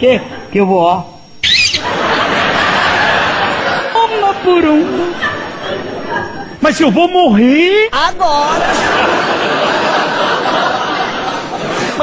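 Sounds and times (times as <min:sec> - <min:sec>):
high-pitched shriek: 0:01.4 - 0:01.9
audience laughing: 0:01.5 - 0:06.6, 0:08.3 - 0:12.0.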